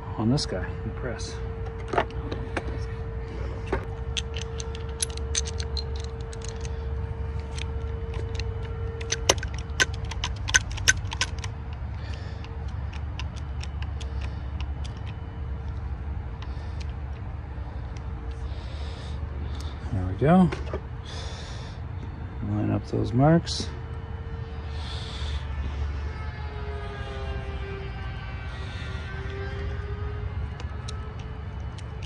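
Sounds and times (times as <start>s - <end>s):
steady low rumble: 0.0s - 32.0s
metallic clicks of hand tools: 7.5s - 15.2s.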